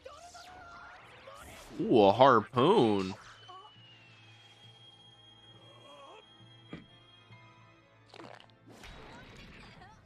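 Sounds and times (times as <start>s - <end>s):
background music: 4.0s - 9.5s.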